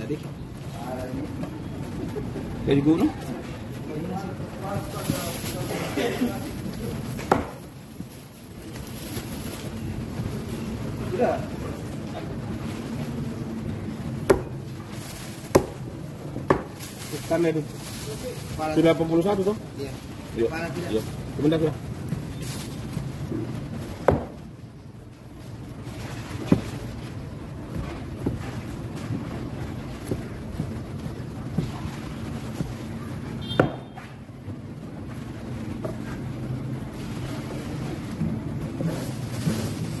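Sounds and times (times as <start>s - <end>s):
knife chopping on wooden block: 7.2s - 7.6s.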